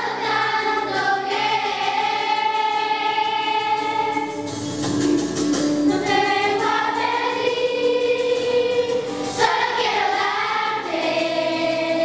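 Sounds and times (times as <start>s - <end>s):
children's choir singing: 0.0s - 4.6s, 5.8s - 12.0s.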